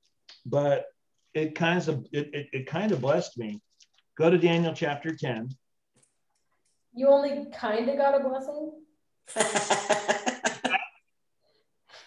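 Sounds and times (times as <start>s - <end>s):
person laughing: 9.3s - 11.0s.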